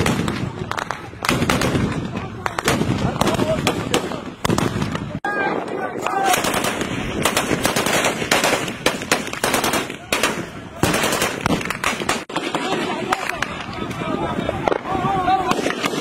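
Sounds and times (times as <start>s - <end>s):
gunshots: 0.0s - 13.7s, 14.6s - 16.0s
automatic gunfire bursts: 6.3s - 12.7s.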